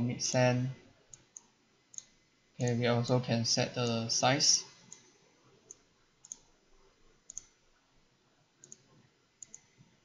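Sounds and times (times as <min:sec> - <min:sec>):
computer mouse clicking: 0:01.1 - 0:02.8, 0:04.8 - 0:06.6, 0:07.2 - 0:07.6, 0:08.6 - 0:09.8.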